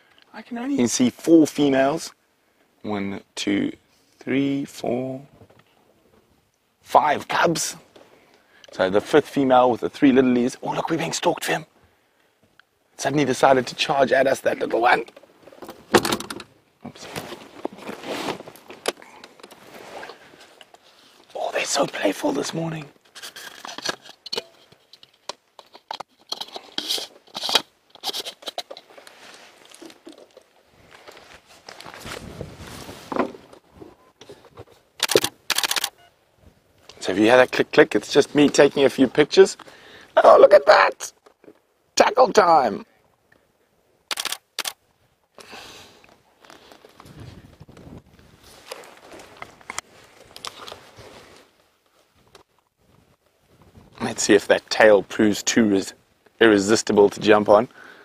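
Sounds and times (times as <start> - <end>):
rustling handling noise: 14.6 - 35.8, 46.0 - 54.8
camera shutter clicking: 35.0 - 36.0, 44.1 - 44.8.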